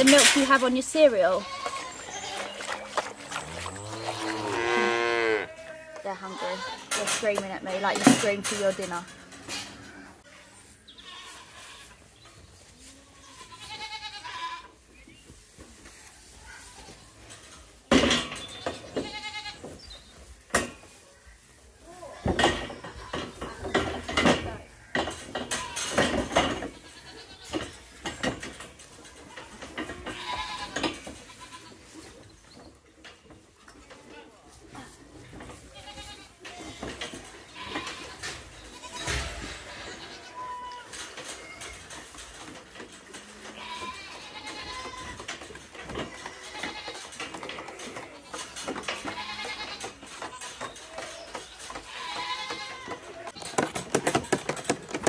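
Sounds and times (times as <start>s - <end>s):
knocks and clatter on metal gate: 0.0s - 0.8s, 6.8s - 9.8s, 17.3s - 19.5s, 22.2s - 31.5s, 35.4s - 55.0s
calves bawling: 0.0s - 11.9s.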